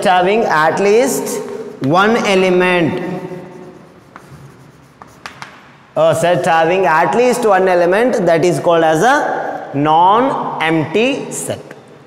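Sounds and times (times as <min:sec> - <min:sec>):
chalk tap: 0:02.2 - 0:05.8
chalk scratching on chalkboard: 0:02.9 - 0:05.7.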